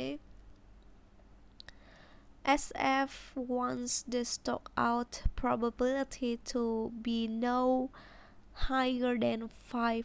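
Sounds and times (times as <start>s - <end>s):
person speaking: 0.0s - 0.2s, 8.6s - 10.0s.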